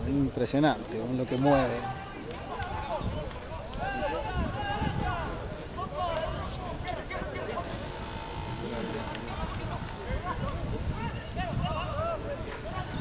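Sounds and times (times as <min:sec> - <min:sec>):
overlapping voices calling out: 0:01.6 - 0:13.0.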